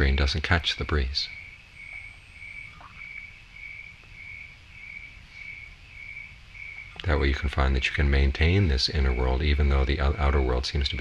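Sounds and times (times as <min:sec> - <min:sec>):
cricket chirping: 0:00.0 - 0:11.0
low background hum: 0:00.0 - 0:11.0.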